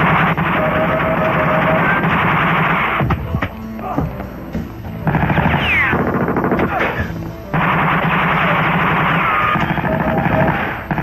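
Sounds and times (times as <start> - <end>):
automatic rifle fire: 5.0 - 11.0.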